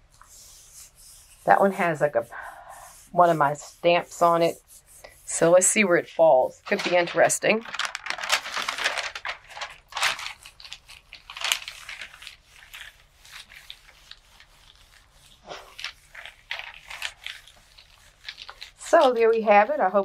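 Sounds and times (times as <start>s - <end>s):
paper rustling and crinkling: 6.6s - 20.0s.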